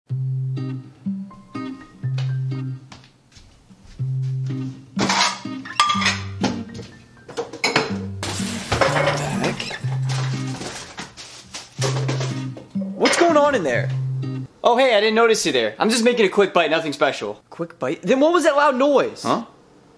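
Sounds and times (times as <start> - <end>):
background music: 0.1 - 3.0, 3.6 - 14.6
kitchen dishes and utensils clattering: 5.0 - 6.6, 7.3 - 13.4.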